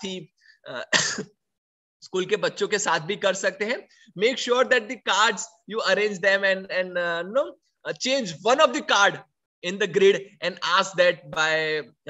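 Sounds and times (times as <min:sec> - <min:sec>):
man speaking: 0:00.0 - 0:01.1, 0:02.0 - 0:12.0
man clearing his throat: 0:00.7 - 0:01.4.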